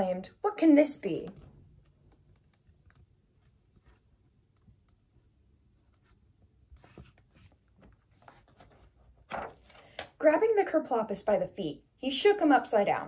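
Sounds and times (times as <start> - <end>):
paper book rustling: 3.2 - 4.4, 6.0 - 10.2.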